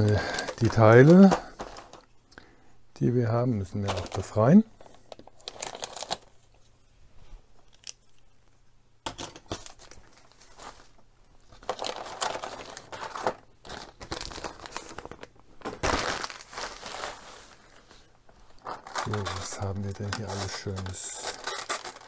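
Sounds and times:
plastic bag crinkling: 0:00.0 - 0:02.1, 0:03.6 - 0:06.4, 0:09.5 - 0:22.0.

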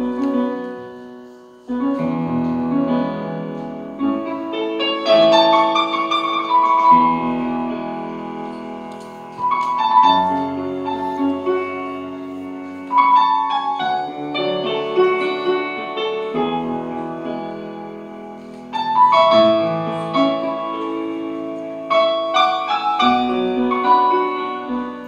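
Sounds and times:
grand piano chords: 0:00.0 - 0:25.0
deep piano bass notes: 0:01.7 - 0:25.0.

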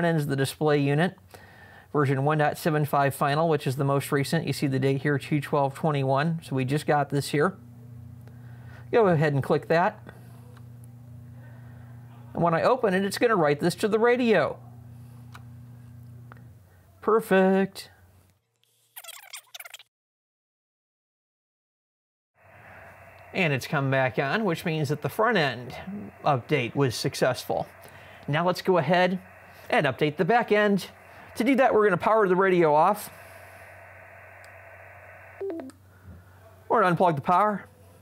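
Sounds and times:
high warbling chirpy sound: 0:22.4 - 0:35.7
radio receiver hiss: 0:22.4 - 0:35.8
falling three-note beep: 0:35.4 - 0:35.7.

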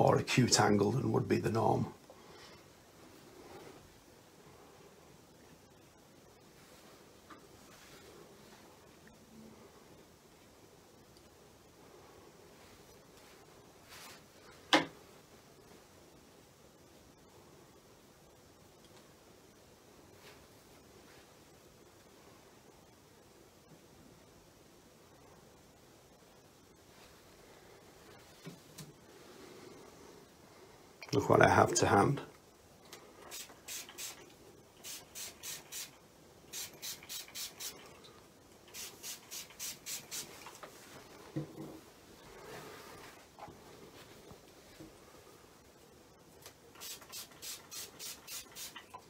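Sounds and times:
spray bottle squirts hissing: 0:33.3 - 0:34.2, 0:34.8 - 0:37.8, 0:38.7 - 0:40.5, 0:46.8 - 0:49.0.

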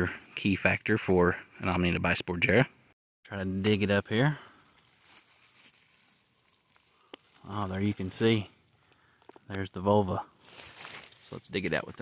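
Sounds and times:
fingers digging in soil: 0:04.8 - 0:08.4, 0:10.4 - 0:12.0.

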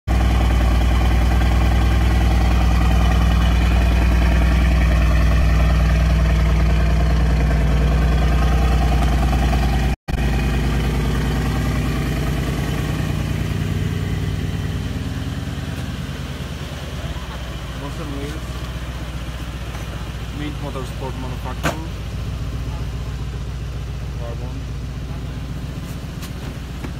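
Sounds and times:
loud car engine idling: 0:00.1 - 0:26.9.

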